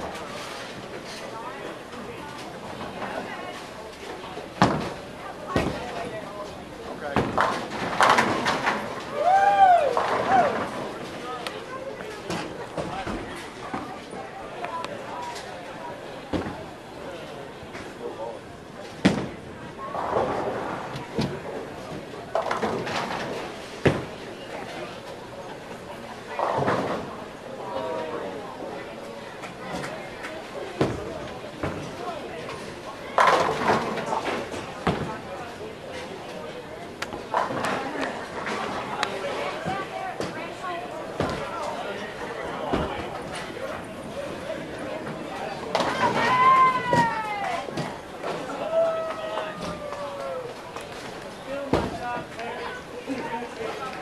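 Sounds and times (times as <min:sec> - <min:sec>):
voices: 0:00.0 - 0:54.0.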